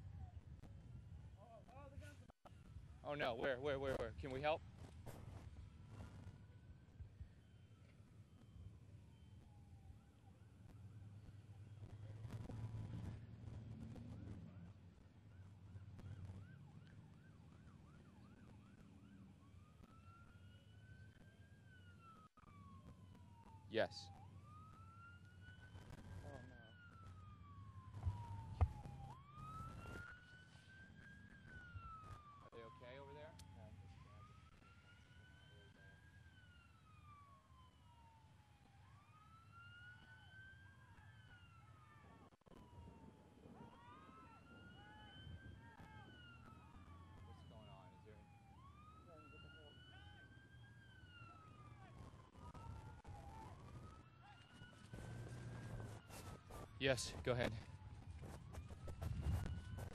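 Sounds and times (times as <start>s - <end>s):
faint wailing siren: 0.0s - 59.9s.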